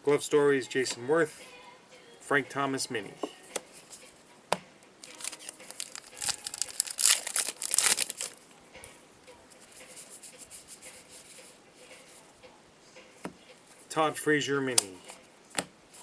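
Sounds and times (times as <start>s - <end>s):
cards being handled ticking: 5.0s - 8.4s, 14.7s - 16.0s
wrapper tearing and crinkling: 5.0s - 8.4s.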